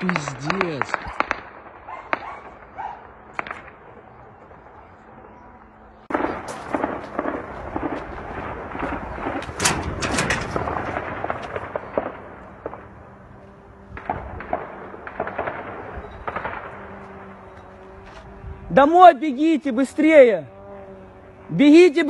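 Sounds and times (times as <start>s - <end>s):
gunfire: 0.0s - 4.0s, 6.1s - 13.0s, 13.9s - 17.4s.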